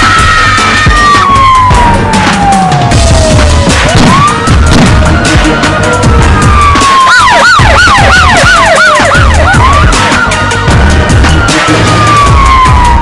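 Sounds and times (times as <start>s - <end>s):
fast yelping siren: 0.0s - 13.0s
slow wailing siren: 0.0s - 13.0s
heavy low beat: 0.9s - 7.0s, 7.6s - 13.0s.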